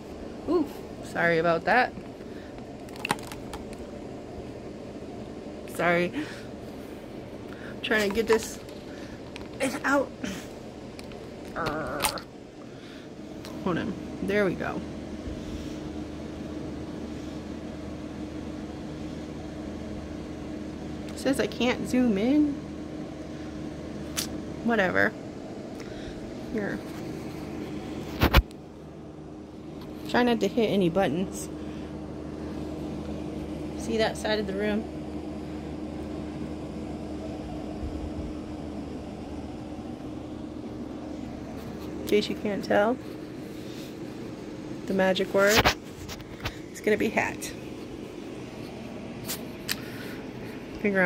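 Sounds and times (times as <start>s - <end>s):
steady mechanical hum: 0.0s - 51.0s.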